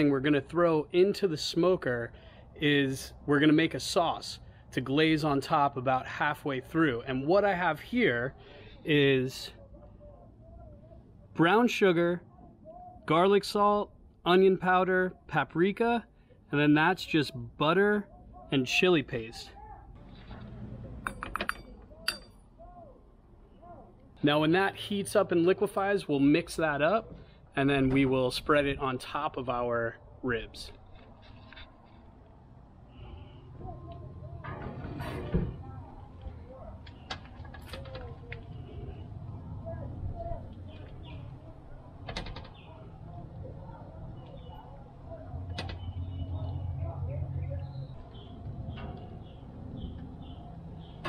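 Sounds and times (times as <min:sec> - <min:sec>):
sharp metal clink: 0:21.0 - 0:22.4.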